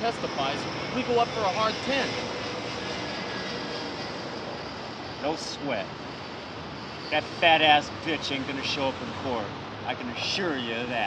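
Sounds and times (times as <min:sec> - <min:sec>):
freeway traffic rushing: 0:00.0 - 0:11.0.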